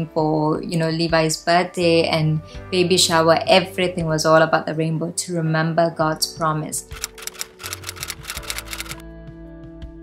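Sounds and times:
soft background music: 0.0s - 10.0s
typewriter keystroke clicks: 7.0s - 9.0s.

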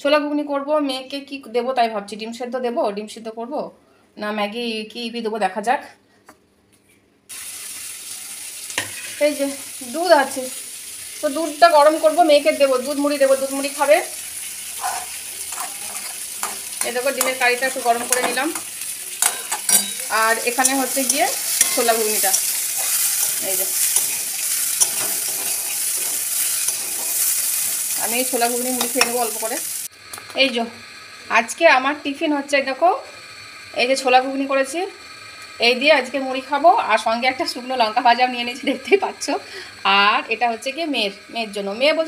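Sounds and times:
food sizzling in a pan: 7.3s - 42.0s
metal spatula scraping wok: 8.7s - 9.4s, 14.7s - 29.9s.

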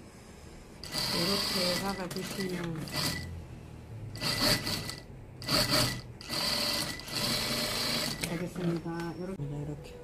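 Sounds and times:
industrial sewing machine stitching: 0.8s - 3.3s, 4.2s - 8.8s.

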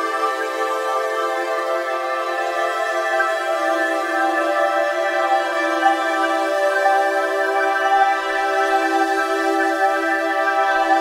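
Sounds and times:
new-age music with sustained tones: 0.0s - 11.0s.

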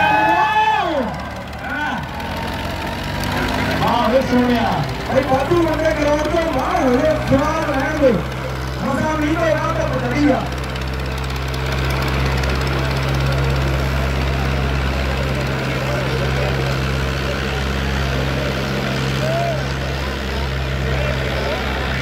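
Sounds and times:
faint crowd voices: 0.0s - 22.0s
tractor engines droning: 0.0s - 22.0s.

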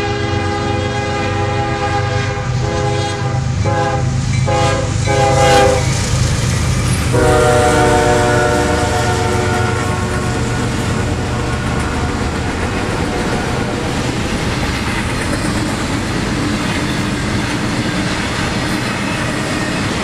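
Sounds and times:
train air horn blasts: 0.0s - 5.9s, 7.1s - 11.9s.

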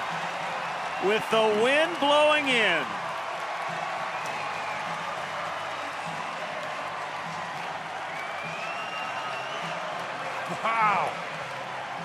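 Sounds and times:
crowd cheering and applauding: 0.0s - 12.0s
high shout or whistle: 8.1s - 9.8s.

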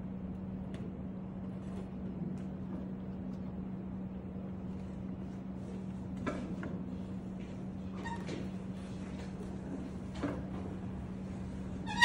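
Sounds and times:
steady low hum: 0.0s - 12.0s
faint squeak: 7.9s - 8.4s.

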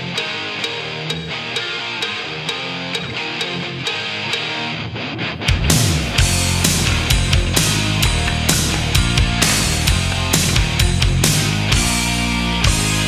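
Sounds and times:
bass guitar: 0.0s - 13.0s
electric guitar riff: 0.0s - 13.0s
steady ticking beat: 0.0s - 13.0s
drums: 5.2s - 13.0s.

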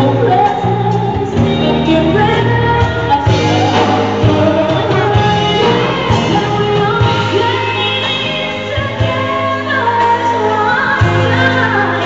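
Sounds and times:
live band playing: 0.0s - 12.0s
woman singing into a microphone: 0.0s - 12.0s.

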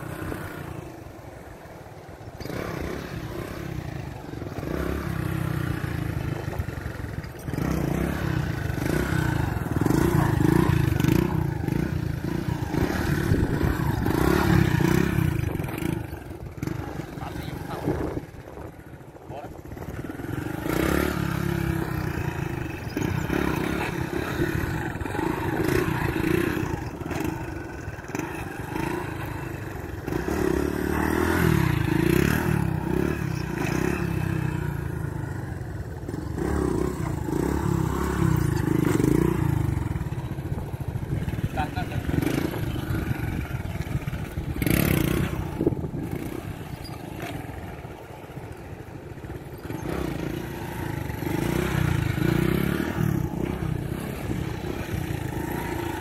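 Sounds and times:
small motorcycle engine revving: 0.0s - 56.0s.

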